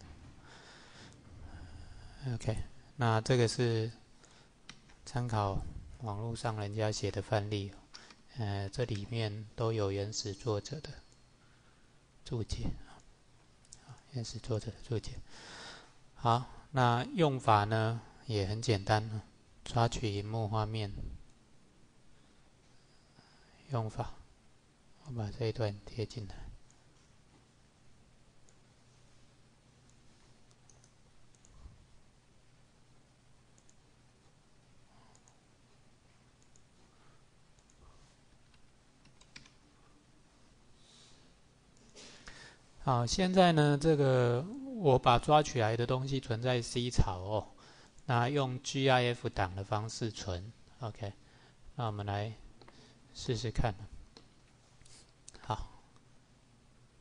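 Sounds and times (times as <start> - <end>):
man speaking: 2.0 - 4.0, 5.0 - 11.1, 16.2 - 21.1, 42.8 - 51.2
computer clicks: 29.9 - 31.6, 33.5 - 33.8, 35.1 - 35.4, 36.4 - 36.7, 37.6 - 37.8, 38.4 - 39.6
computer mouse and keyboard clicks: 38.4 - 39.6.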